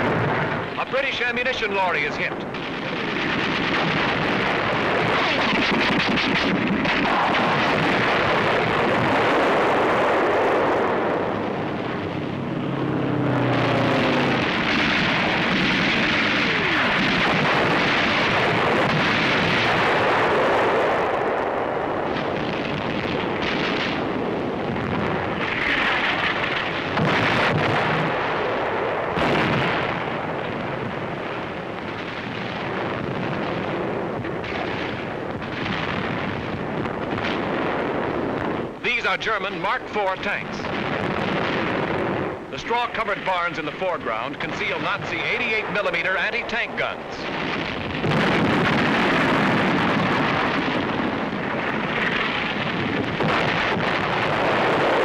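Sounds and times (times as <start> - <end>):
sharp blast: 0.0 - 21.1
falling whine: 0.0 - 22.4
artillery fire and shell explosions: 0.0 - 55.0
gunfire: 1.7 - 12.2, 13.6 - 21.2, 22.0 - 55.0.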